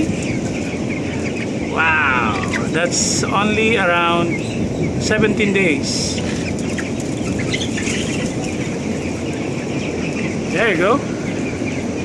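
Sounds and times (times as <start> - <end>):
chickens chirping and clucking: 0.0 - 12.0
ventilation fans rushing: 0.0 - 12.0.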